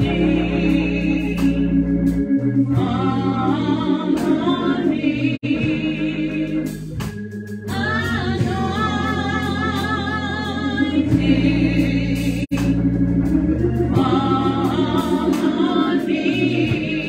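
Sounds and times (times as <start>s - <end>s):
woman singing gospel: 0.0s - 12.9s, 13.9s - 17.0s
organ holding low notes: 0.0s - 17.0s.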